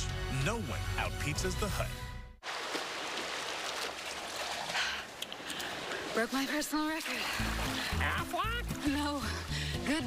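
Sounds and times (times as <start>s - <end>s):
swimmer splashing in pool: 2.4s - 8.8s.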